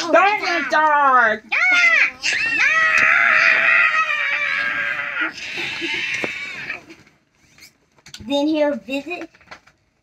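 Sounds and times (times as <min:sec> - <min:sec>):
child roaring: 0:00.2 - 0:06.8.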